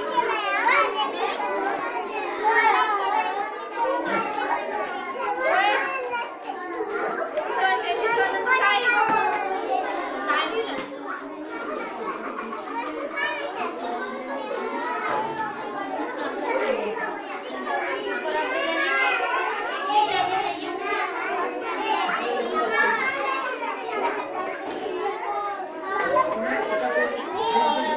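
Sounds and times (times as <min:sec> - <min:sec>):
young children talking and calling out: 0:00.0 - 0:27.9.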